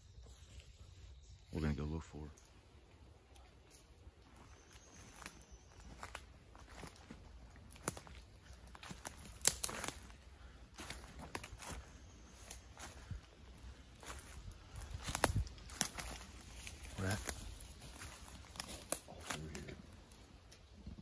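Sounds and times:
footsteps crunching dry leaves: 4.2 - 20.1.

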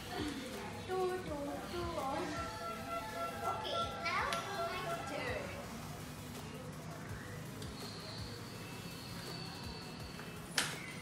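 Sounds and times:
girls chattering: 0.0 - 5.7
background music: 0.0 - 11.0.

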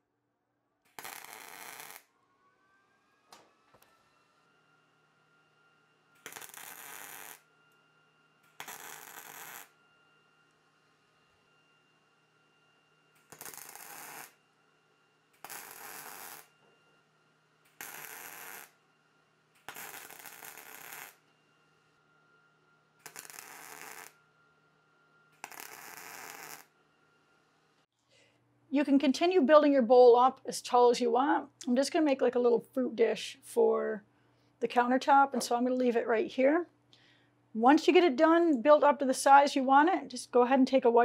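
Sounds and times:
welder arc crackling: 0.9 - 2.0, 6.2 - 7.5, 8.5 - 9.8, 13.2 - 14.4, 15.3 - 16.5, 17.7 - 18.8, 19.6 - 21.3, 23.0 - 24.2, 25.4 - 26.7.

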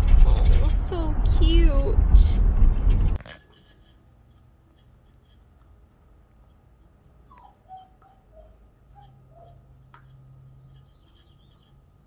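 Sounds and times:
puppy squeaky whines: 7.2 - 9.7.

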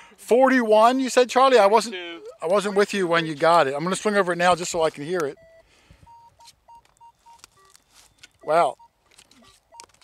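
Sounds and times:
metal detector beeps: 2.1 - 2.6, 5.3 - 10.0.

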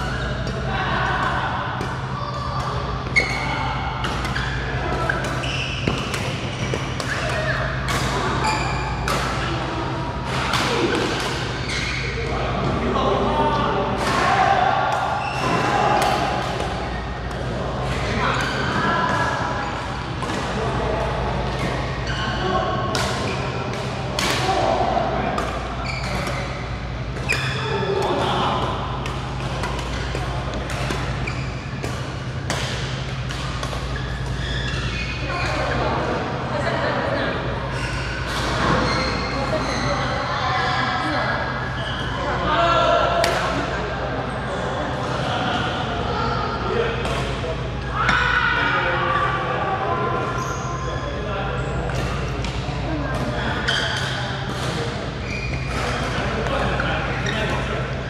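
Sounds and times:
steady low hum: 0.0 - 38.6.

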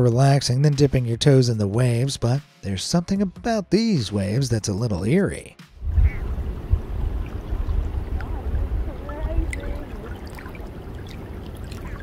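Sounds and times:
steady low rumble: 5.8 - 12.0
small waves lapping: 6.0 - 12.0.

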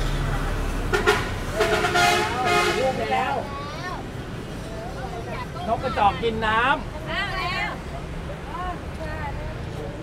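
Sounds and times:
people talking loudly: 0.3 - 10.0.

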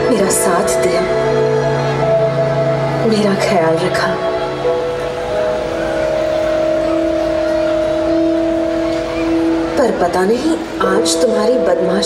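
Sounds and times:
sustained music chord: 0.0 - 12.0
woman's voice-over: 9.8 - 12.0.

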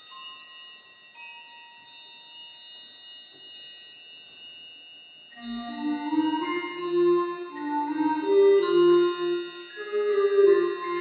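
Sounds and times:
high metallic percussion ringing: 0.0 - 11.0.

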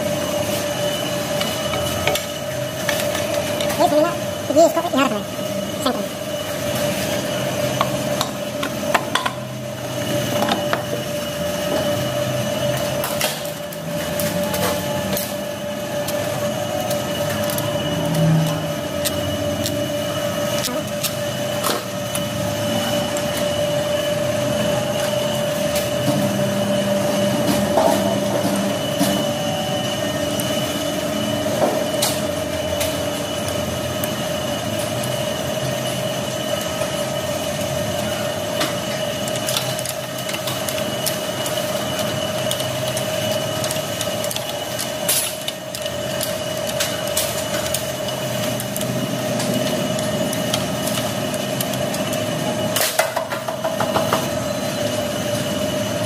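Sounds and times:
mechanical hum with high whine: 0.0 - 56.0.

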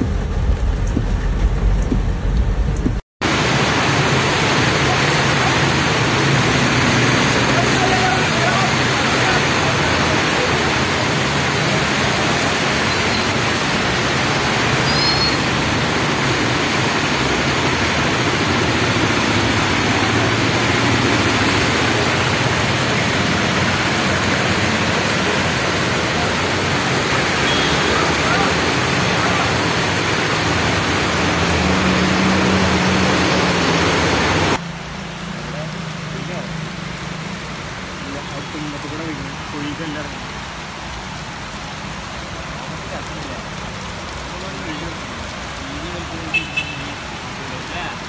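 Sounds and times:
heavy rain hissing: 3.2 - 48.0
vehicles driving through water: 3.2 - 48.0.

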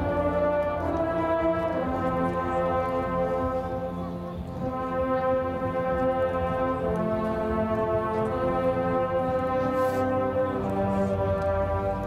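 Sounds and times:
brass ensemble playing held chords: 0.0 - 12.0.

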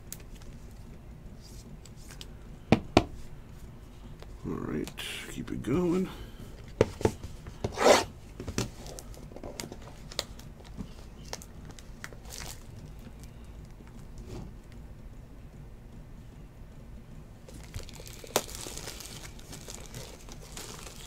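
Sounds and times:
cards sliding and rubbing: 6.6 - 8.1
packaging scraping rustle: 17.5 - 21.0.

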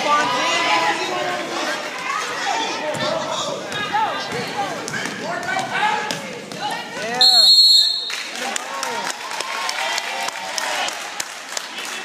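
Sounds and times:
spectators talking: 0.0 - 9.2.

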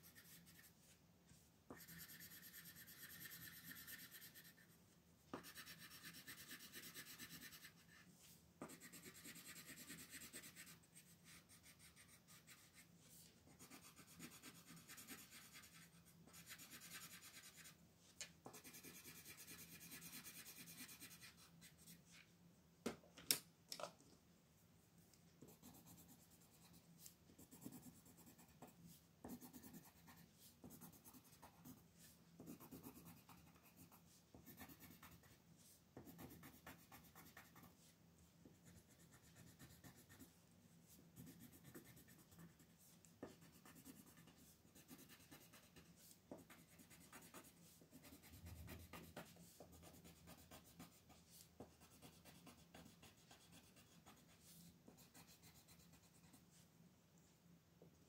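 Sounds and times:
pencil scratching on paper: 0.0 - 1.0, 1.7 - 17.8, 18.4 - 22.2, 25.4 - 56.6.

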